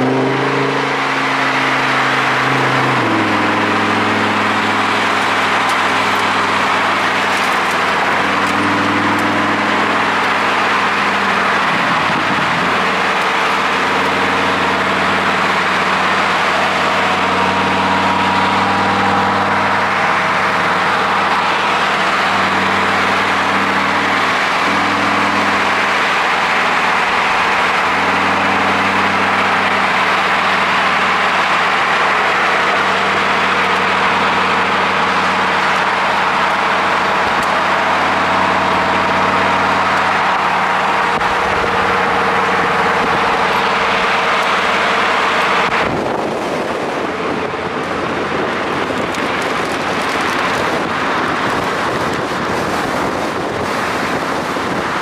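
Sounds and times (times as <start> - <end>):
car engine: 0.0 - 55.0
wind and tyre noise: 0.0 - 55.0.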